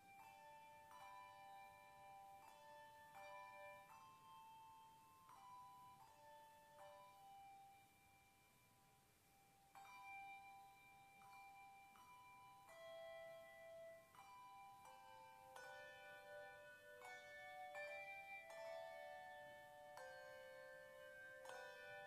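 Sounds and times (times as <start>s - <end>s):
handbells ringing: 0.0s - 22.0s.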